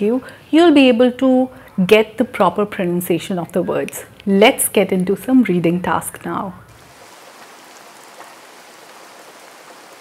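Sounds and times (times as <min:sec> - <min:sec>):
steady rain hiss: 0:06.7 - 0:10.0.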